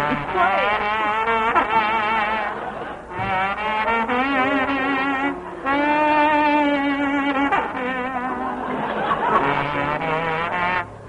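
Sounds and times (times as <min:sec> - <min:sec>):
dance-band horns playing chords: 0:00.0 - 0:11.0.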